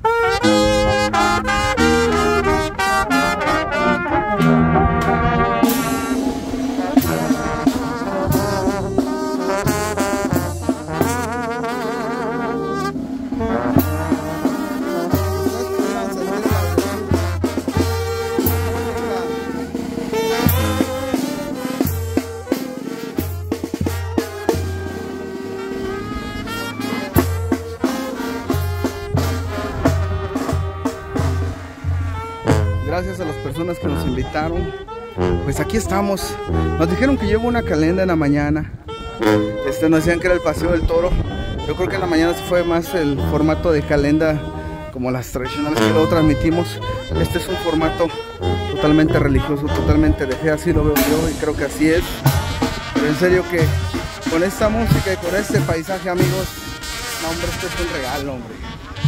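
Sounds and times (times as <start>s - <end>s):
saxophones and trumpets: 0.0s - 59.0s
sousaphone bass line: 0.0s - 59.0s
bass drum: 4.3s - 25.0s, 26.5s - 32.9s, 48.2s - 50.0s, 50.8s - 56.9s.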